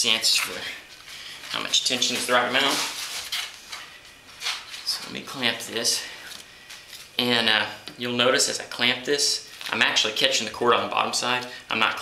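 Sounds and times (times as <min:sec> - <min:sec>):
paper cord rustling and scraping: 0:01.4 - 0:05.0.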